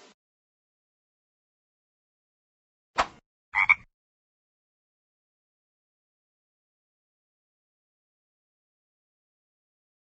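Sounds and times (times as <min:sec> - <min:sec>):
quick swish falling in pitch: 0:03.0 - 0:03.2
frog croak: 0:03.6 - 0:03.9.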